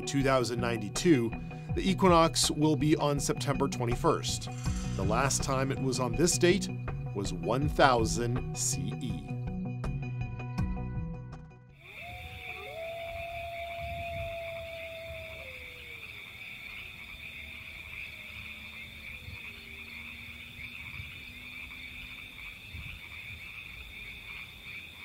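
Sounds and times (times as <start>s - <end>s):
long wailing call: 11.8s - 21.8s
frogs trilling: 11.8s - 25.0s.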